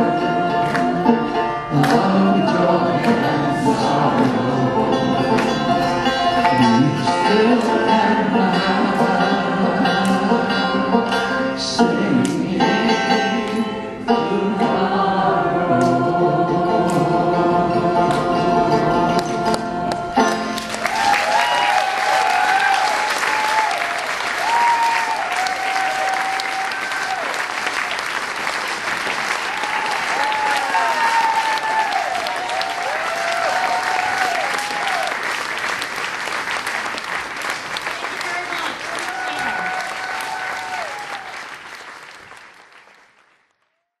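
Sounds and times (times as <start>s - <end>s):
audience applauding: 20.3s - 44.0s
whoops: 20.8s - 27.4s, 29.4s - 35.2s, 39.0s - 41.4s.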